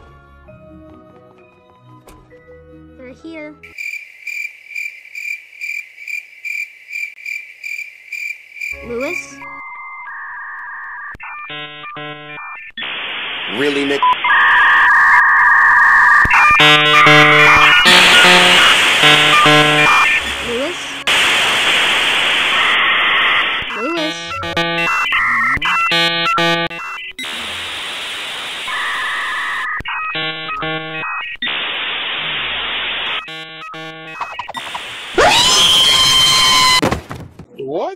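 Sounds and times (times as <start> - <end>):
chirping tone patterns: 8.6 - 13.0, 14.1 - 21.1, 22.6 - 27.4, 28.5 - 31.6, 33.0 - 35.1
rapid beeping: 14.0 - 21.6, 22.4 - 27.4, 28.7 - 31.6, 33.0 - 34.9
electronic hiss: 21.0 - 23.7, 27.2 - 29.7.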